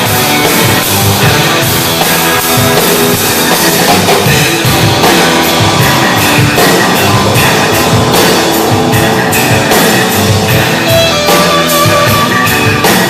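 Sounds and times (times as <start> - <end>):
bass guitar: 0.0 - 13.0
drum kit with cymbal hits: 0.0 - 13.0
electric guitar: 0.0 - 13.0.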